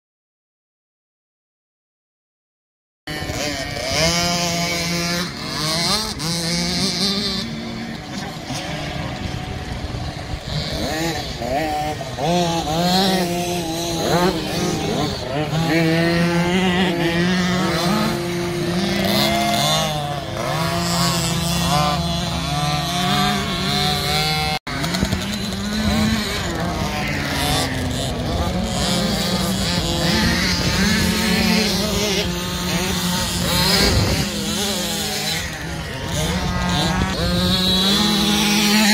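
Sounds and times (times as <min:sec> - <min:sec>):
motocross bike engines revving: 0:03.1 - 0:38.9.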